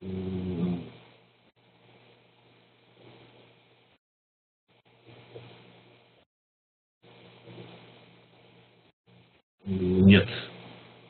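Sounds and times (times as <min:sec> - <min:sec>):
person humming mmm: 0:00.0 - 0:00.9, 0:09.7 - 0:10.4.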